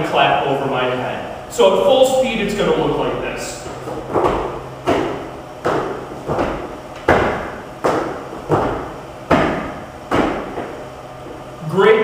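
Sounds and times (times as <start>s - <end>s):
feet landing: 3.5s - 11.5s
hands slapping gym floor: 4.1s - 10.7s
overhead hand claps: 4.2s - 10.6s.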